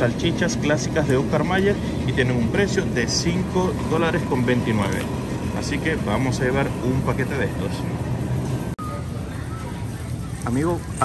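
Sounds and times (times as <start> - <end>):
steady low hum: 0.0 - 11.0
faint background voices: 1.0 - 11.0
faint beep: 8.8 - 10.3.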